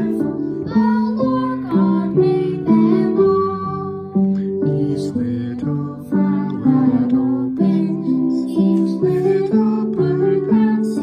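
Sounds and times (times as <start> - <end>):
piano playing slow hymn tune: 0.0 - 11.0.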